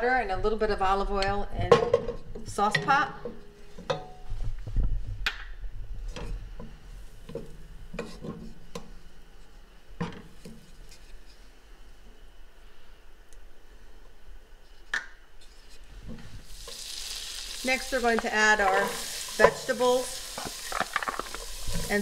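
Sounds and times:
wooden spoon scraping metal pot: 0:15.7 - 0:22.0.

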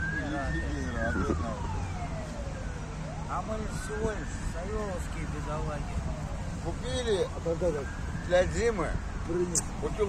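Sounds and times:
siren wailing: 0:00.0 - 0:09.3.

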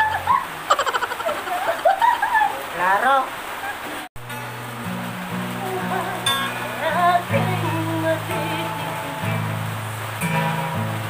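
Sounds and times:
acoustic guitar: 0:00.0 - 0:02.0, 0:04.1 - 0:11.0
woman laughing: 0:00.0 - 0:02.7, 0:03.6 - 0:04.1.

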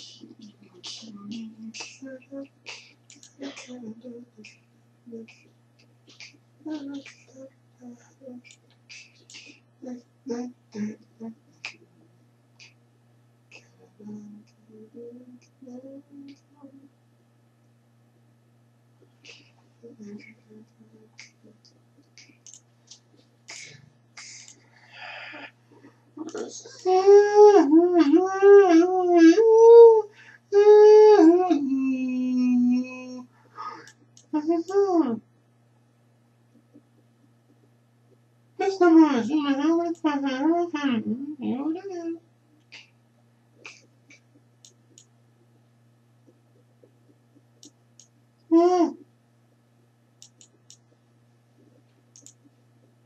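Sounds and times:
low steady hum: 0:00.0 - 0:53.0
faint clicks: 0:21.2 - 0:24.6, 0:43.6 - 0:45.5, 0:50.2 - 0:51.0, 0:51.6 - 0:53.0.

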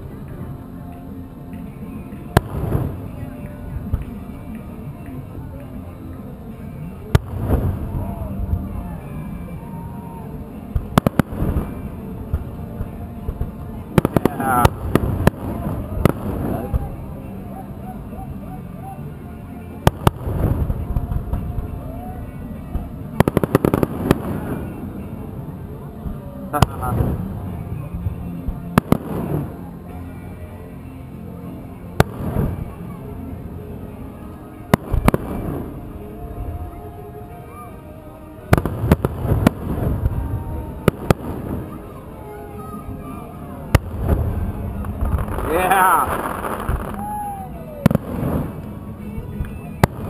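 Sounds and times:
distant fireworks bursting: 0:01.6 - 0:05.2, 0:06.9 - 0:09.4, 0:10.7 - 0:18.2, 0:19.8 - 0:29.6, 0:31.9 - 0:33.0, 0:34.7 - 0:36.8, 0:38.5 - 0:42.8, 0:43.7 - 0:50.0.

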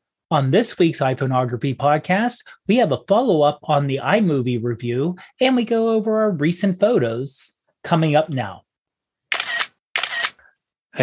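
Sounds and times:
camera shutter snapping: 0:09.3 - 0:10.4.

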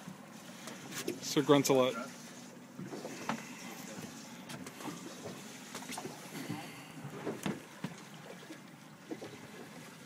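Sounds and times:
water washing around boat: 0:00.0 - 0:10.0
wind: 0:00.0 - 0:10.0.

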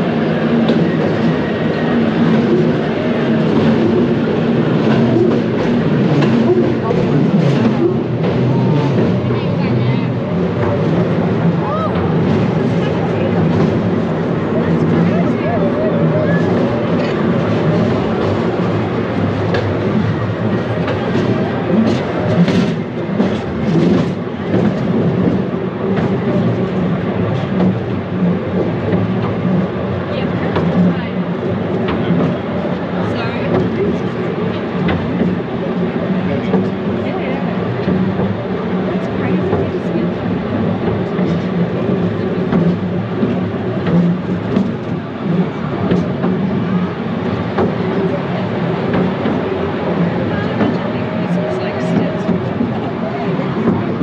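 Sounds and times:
people's voices: 0:00.0 - 0:54.0.

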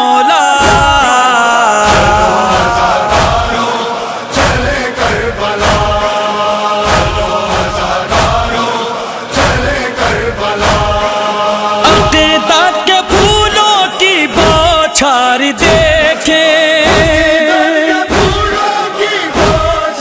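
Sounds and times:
male chorus chanting: 0:00.0 - 0:20.0
chest-beating thumps: 0:00.6 - 0:01.1, 0:01.8 - 0:06.1, 0:06.8 - 0:08.6, 0:16.8 - 0:17.4, 0:18.1 - 0:18.6, 0:19.3 - 0:19.8.

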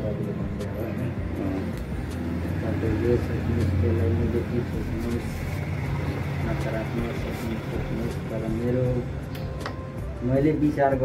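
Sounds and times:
scissors snipping hair: 0:01.6 - 0:02.3.

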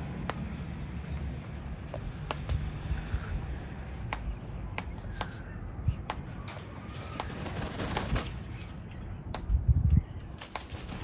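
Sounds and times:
beaks clicking on branch: 0:04.0 - 0:06.3.

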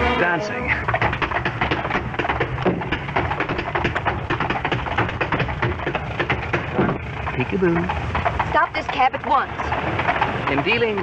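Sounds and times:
tap shoes on hard floor: 0:01.0 - 0:07.0.

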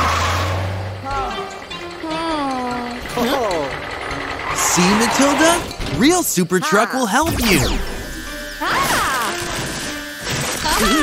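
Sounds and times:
cartoon truck speeding in: 0:00.0 - 0:06.0
short voice exclamation: 0:06.4 - 0:07.7.

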